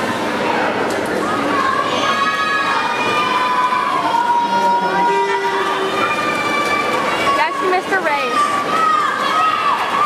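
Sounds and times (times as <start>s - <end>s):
indoor hall background noise: 0.0s - 10.0s
spectators cheering with shouts: 1.5s - 10.0s.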